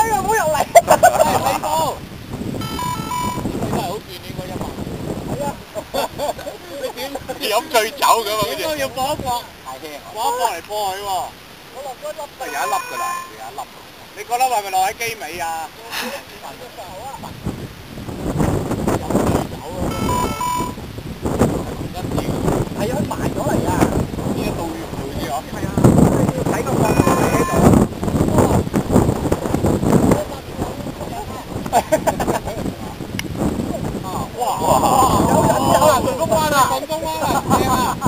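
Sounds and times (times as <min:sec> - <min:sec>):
wind: 0:00.0 - 0:38.0
two-note electronic beeping: 0:02.6 - 0:03.5, 0:12.5 - 0:13.5, 0:19.9 - 0:20.8, 0:26.9 - 0:27.7
faint voices: 0:06.5 - 0:17.4, 0:21.5 - 0:28.7.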